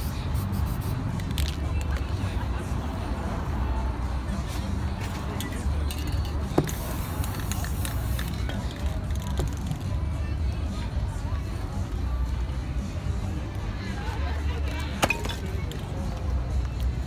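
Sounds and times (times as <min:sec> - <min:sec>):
spray paint can hissing: 0:00.0 - 0:02.0, 0:05.9 - 0:10.0
crowd chatter: 0:00.0 - 0:17.0
street music: 0:00.0 - 0:17.0.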